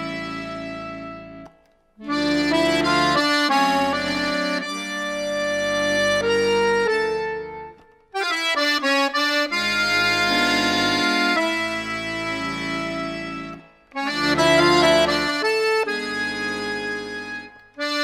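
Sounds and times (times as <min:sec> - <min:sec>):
accordion melody with chords: 0:00.0 - 0:18.0.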